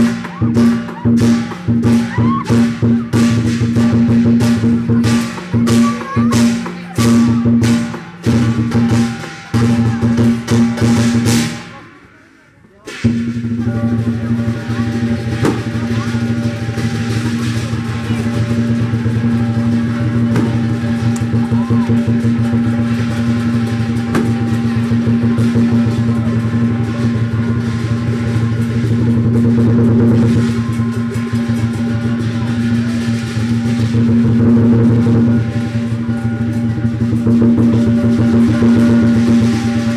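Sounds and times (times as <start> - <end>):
clashing cymbals: 0.0 - 39.9
large drum fast strokes: 0.0 - 39.9.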